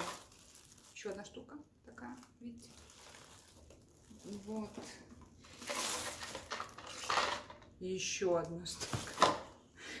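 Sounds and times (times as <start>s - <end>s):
plastic packaging rustling: 0.0s - 7.7s, 8.7s - 9.6s.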